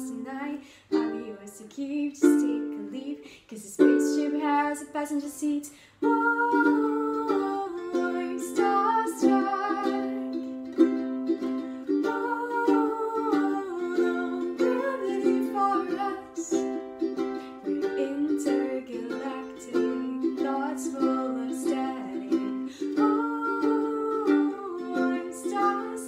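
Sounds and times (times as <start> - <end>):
ukulele strumming chords: 0.0 - 3.2, 3.8 - 5.2, 6.0 - 26.0
woman singing wordless melody: 0.0 - 26.0.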